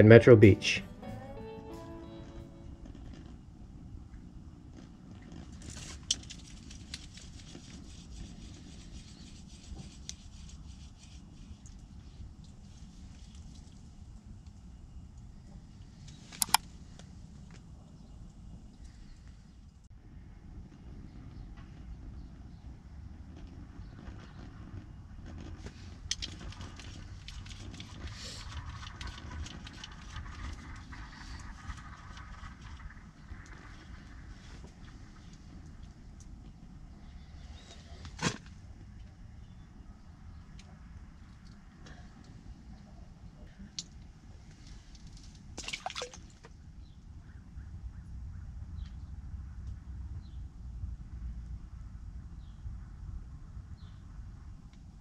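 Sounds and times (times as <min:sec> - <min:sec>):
steady low rumble: 0:46.5 - 0:55.0.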